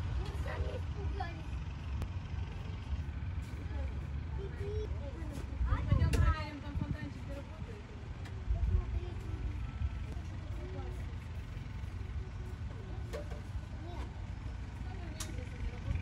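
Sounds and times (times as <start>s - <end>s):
distant indistinct voices: 0.0s - 16.0s.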